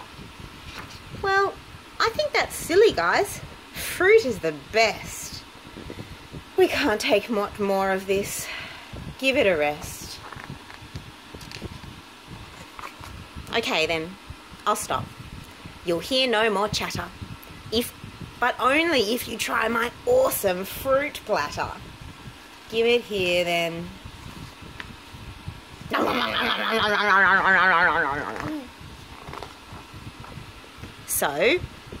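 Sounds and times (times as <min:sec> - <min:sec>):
room hum: 0:00.0 - 0:32.0
paper page rustling: 0:00.6 - 0:01.0, 0:12.6 - 0:13.2, 0:29.0 - 0:30.4
person making warbling gobble sound: 0:25.9 - 0:28.7.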